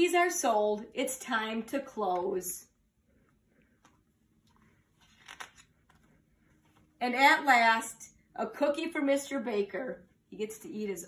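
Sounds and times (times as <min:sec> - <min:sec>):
book page turning: 0:03.7 - 0:07.0.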